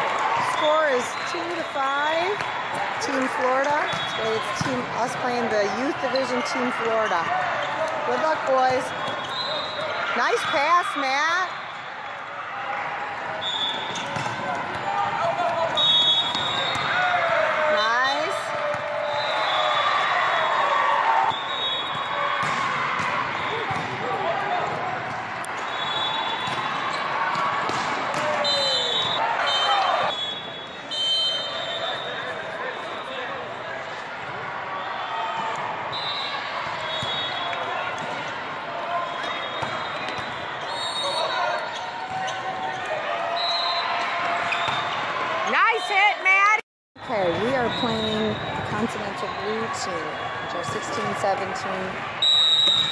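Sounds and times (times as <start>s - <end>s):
sneaker squeaks on court floor: 8.9s - 10.0s, 13.4s - 14.4s, 15.8s - 17.0s, 36.8s - 38.3s, 39.0s - 43.0s, 44.4s - 45.0s
volleyballs hit and bouncing: 13.1s - 19.2s, 21.3s - 30.0s, 36.6s - 40.5s.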